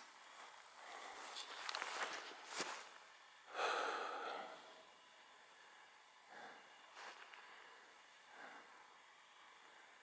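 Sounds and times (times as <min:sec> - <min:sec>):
footsteps in dry grass: 0:00.2 - 0:03.2, 0:06.9 - 0:07.7.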